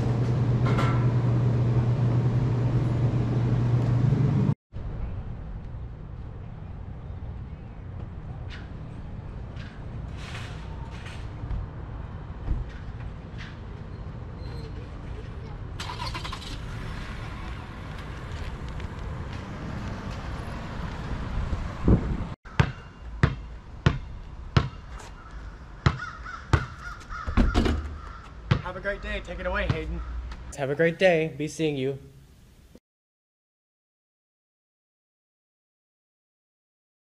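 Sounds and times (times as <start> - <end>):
traffic rumble: 0.0 - 31.9
vehicle passing: 15.8 - 22.4
basketball bouncing on concrete: 22.5 - 28.8, 29.6 - 29.9.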